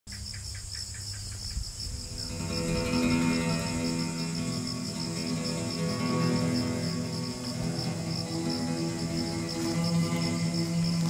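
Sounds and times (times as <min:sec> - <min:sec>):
crickets chirping: 0:00.1 - 0:11.0
background music: 0:02.0 - 0:11.0.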